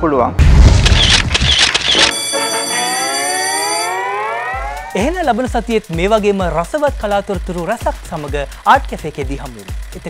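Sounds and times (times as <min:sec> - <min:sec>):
rising electronic tone: 0:00.9 - 0:05.4.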